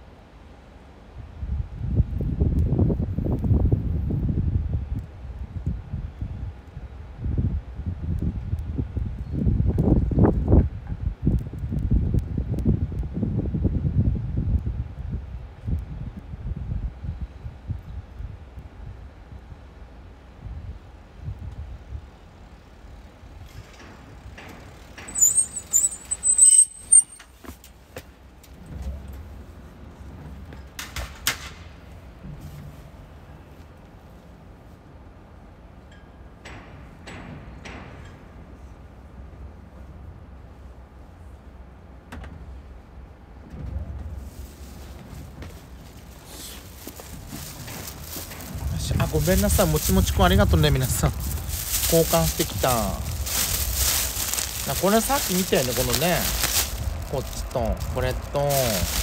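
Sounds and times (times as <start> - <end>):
road traffic rumbling: 24.6 - 27.4, 44.2 - 59.0
high-pitched squeal: 25.1 - 27.2.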